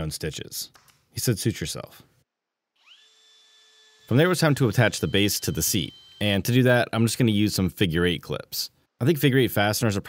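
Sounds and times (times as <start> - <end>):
cordless drill motor whine: 2.8 - 6.4.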